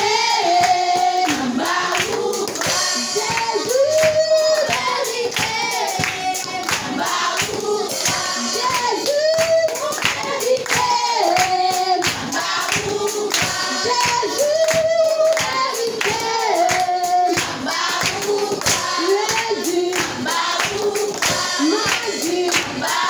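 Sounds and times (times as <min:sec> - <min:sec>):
children singing in unison: 0:00.0 - 0:23.0
hand claps on the beat: 0:00.0 - 0:23.0.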